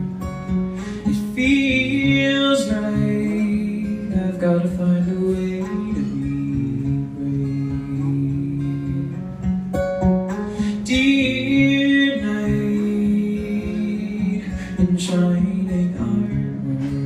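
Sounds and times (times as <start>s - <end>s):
acoustic guitar strummed and picked: 0.0s - 17.0s.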